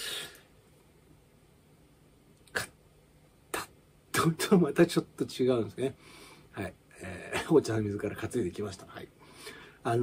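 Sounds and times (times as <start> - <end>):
man speaking: 3.5 - 6.0, 6.6 - 9.2.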